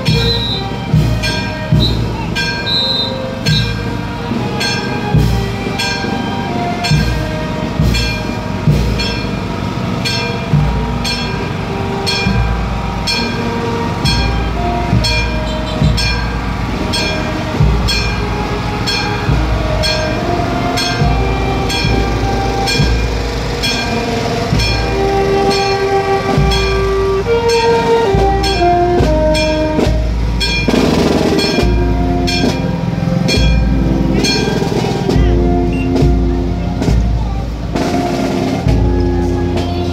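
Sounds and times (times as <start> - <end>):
bass drum beats: 0.0 - 2.8, 14.0 - 39.9
marching brass band playing: 0.0 - 39.9.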